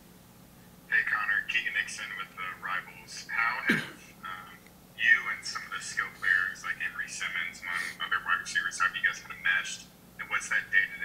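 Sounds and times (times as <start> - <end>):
man speaking over telephone line: 0.9 - 11.0.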